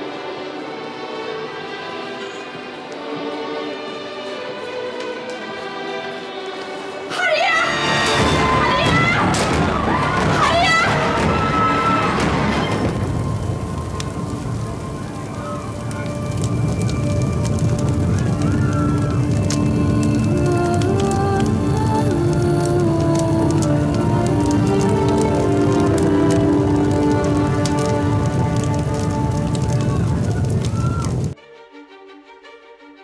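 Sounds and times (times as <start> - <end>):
quiet string music: 0.0 - 30.2, 31.3 - 33.0
dramatic orchestral score: 0.0 - 33.0
fire crackling: 4.3 - 31.4.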